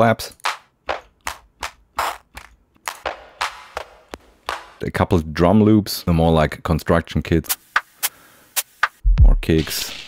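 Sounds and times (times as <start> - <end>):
electronic clap samples: 0.2 - 4.9, 7.5 - 9.0.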